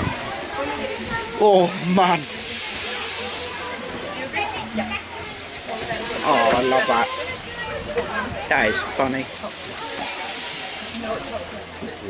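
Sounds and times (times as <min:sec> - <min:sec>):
faint voices: 0:00.0 - 0:12.0
steam engine hissing: 0:00.0 - 0:12.0.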